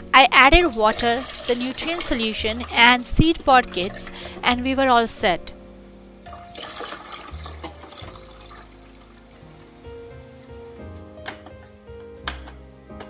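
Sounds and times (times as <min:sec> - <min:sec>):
background music: 0:00.0 - 0:13.0
water pouring into plastic reservoir: 0:00.6 - 0:04.4, 0:06.3 - 0:09.4.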